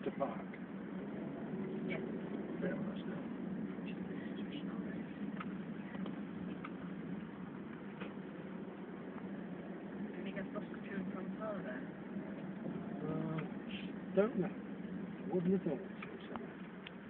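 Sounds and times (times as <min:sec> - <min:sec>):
car road and engine hum: 0:00.0 - 0:17.0.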